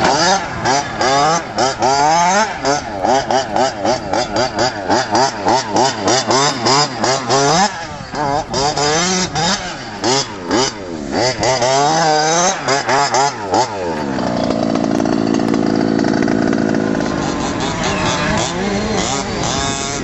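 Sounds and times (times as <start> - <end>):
small two-stroke engine revving: 0.0 - 20.0.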